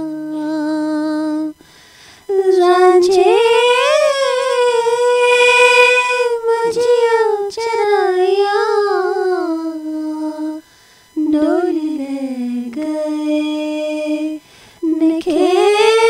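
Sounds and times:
woman singing slow melody: 0.0 - 16.0.

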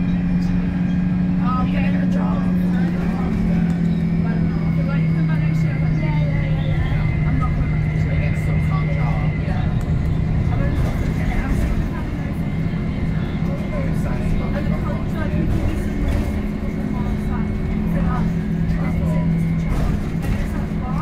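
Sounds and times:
bus engine drone: 0.0 - 21.0.

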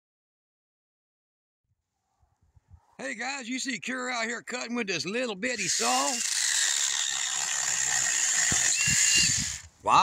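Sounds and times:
mini chainsaw cutting branch: 5.6 - 9.7.

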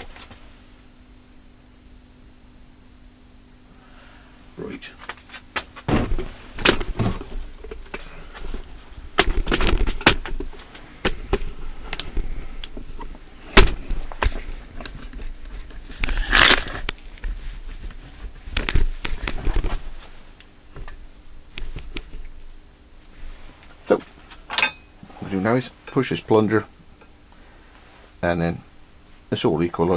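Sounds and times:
knocks and rattles of handling: 5.0 - 16.0.

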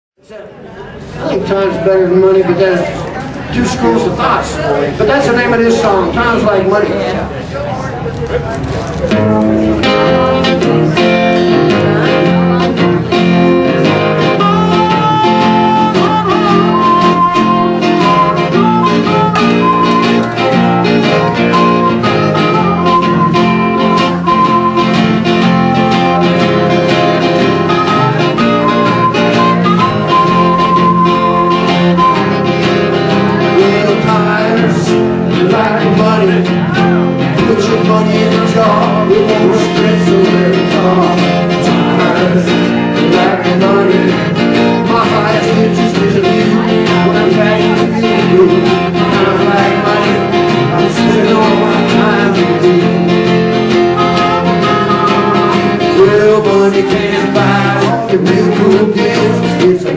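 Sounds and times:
strummed acoustic guitar: 8.7 - 59.9
blues harmonica: 9.1 - 35.7, 36.7 - 59.9.

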